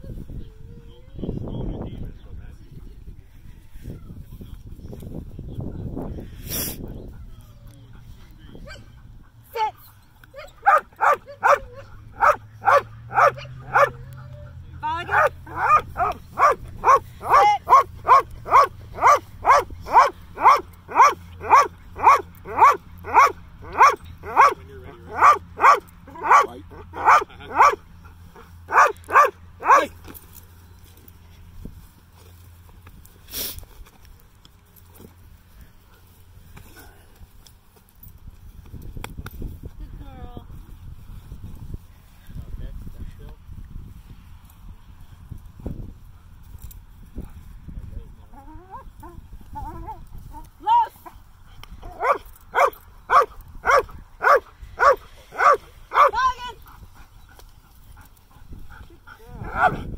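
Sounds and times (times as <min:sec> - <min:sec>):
dog barking: 0:10.4 - 0:14.1, 0:15.1 - 0:27.8, 0:28.7 - 0:29.9, 0:51.9 - 0:56.2, 0:59.4 - 0:59.8.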